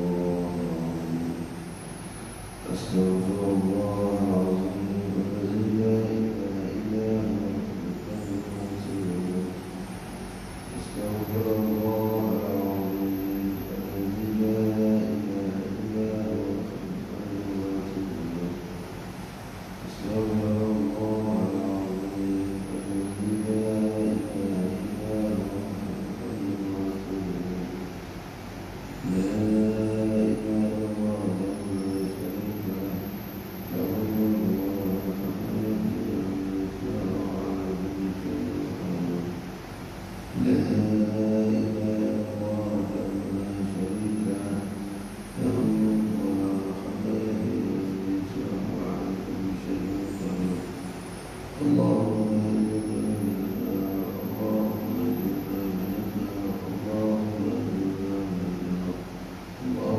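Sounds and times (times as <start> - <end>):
man chanting held notes: 0.0 - 1.8, 2.5 - 19.0, 19.8 - 28.0, 29.0 - 39.5, 40.3 - 59.9.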